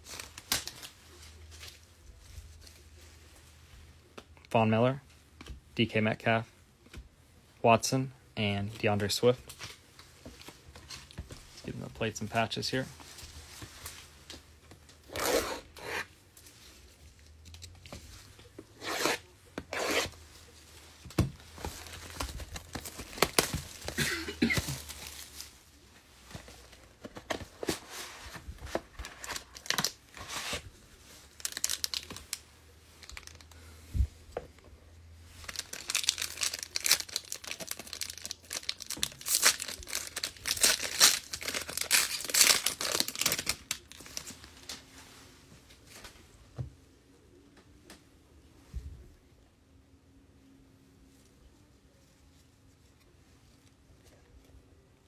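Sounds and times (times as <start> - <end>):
plastic wrapping tearing and crinkling: 0.0 - 1.8, 21.6 - 25.6, 29.0 - 30.6, 31.3 - 32.4, 33.0 - 33.6, 35.4 - 44.8.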